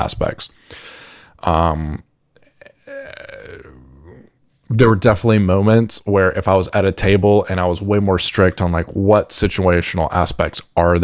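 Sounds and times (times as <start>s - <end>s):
man speaking: 0.0s - 0.6s, 1.4s - 11.0s
man's low drawn-out throat sound: 2.6s - 4.3s.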